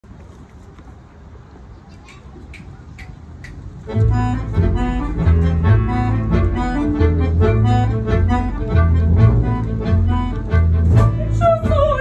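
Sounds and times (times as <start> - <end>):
ensemble playing: 3.8 - 12.0
low rumble: 3.9 - 12.0.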